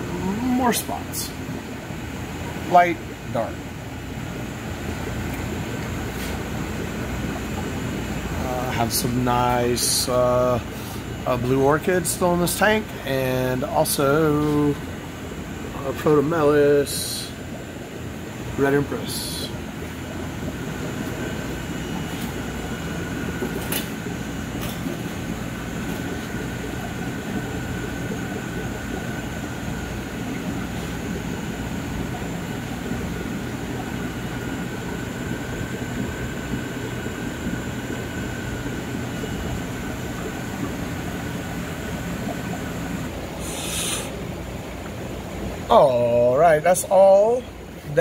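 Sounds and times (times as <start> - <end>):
aquarium equipment humming: 0.0 - 48.0
faint steady whine: 0.0 - 48.0.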